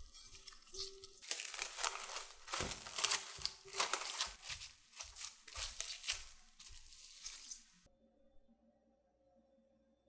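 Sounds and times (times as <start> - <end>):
cling wrap crinkling: 0.0 - 7.9.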